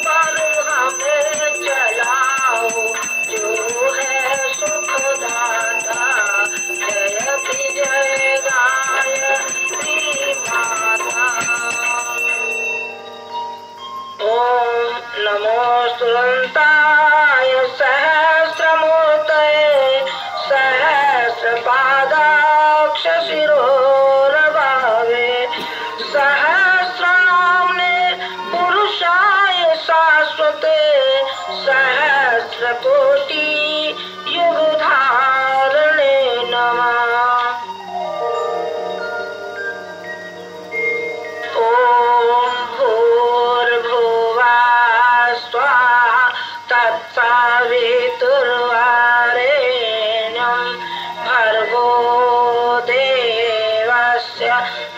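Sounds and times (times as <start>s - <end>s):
person singing a hymn: 0.0s - 12.8s, 14.2s - 38.6s, 41.4s - 54.9s
musical accompaniment: 0.0s - 16.8s, 17.4s - 44.5s.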